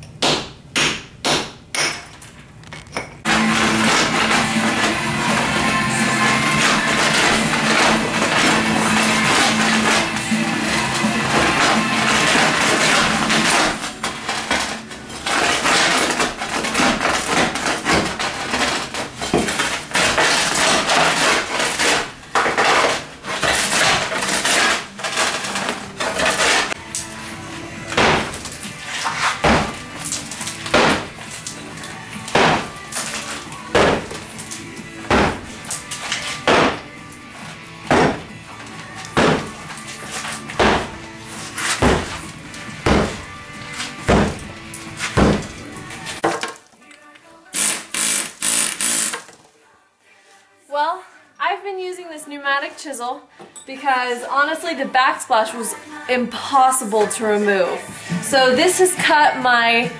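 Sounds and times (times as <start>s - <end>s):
background music: 3.2s - 59.9s
rubble breaking away: 27.9s - 31.5s, 32.3s - 36.9s, 37.9s - 38.3s, 39.0s - 43.3s, 44.0s - 46.6s.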